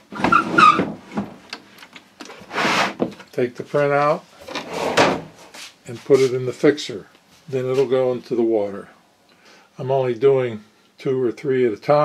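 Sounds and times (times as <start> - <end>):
wooden board scraping with squeak: 0.0 - 1.0.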